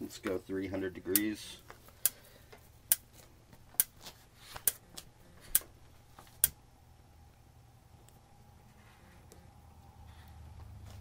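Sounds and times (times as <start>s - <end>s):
oven spark igniter clicking: 1.1s - 1.4s.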